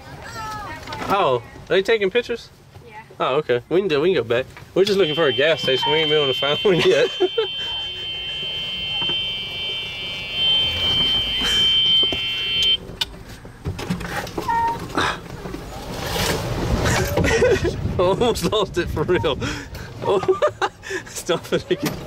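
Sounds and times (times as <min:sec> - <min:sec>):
golf cart hum: 0:04.8 - 0:18.1
high-pitched whine: 0:05.0 - 0:12.8.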